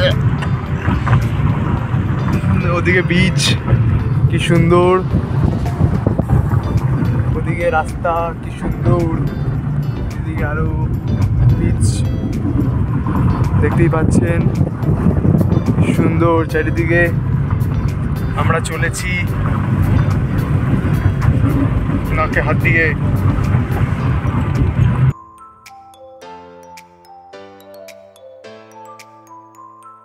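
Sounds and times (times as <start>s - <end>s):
car road and engine rumble: 0.0s - 25.1s
voices: 2.3s - 5.1s, 18.4s - 19.3s, 21.4s - 23.0s.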